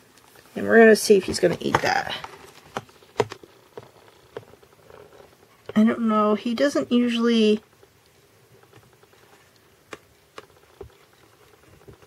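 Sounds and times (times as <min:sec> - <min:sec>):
faint clicks and taps: 0:01.2 - 0:05.8, 0:07.8 - 0:12.0.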